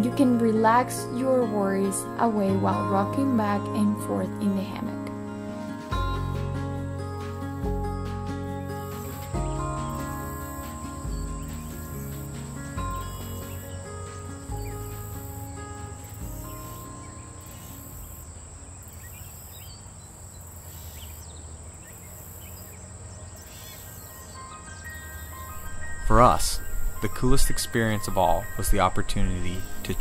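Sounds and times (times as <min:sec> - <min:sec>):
soft music with bass notes: 0:00.0 - 0:18.4, 0:23.4 - 0:30.0
insects chirping: 0:08.3 - 0:30.0.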